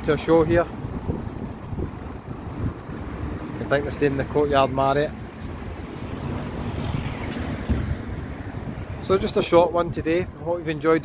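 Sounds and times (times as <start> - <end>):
faint street noise: 0.0 - 11.0
wind buffeting microphone: 0.0 - 11.0.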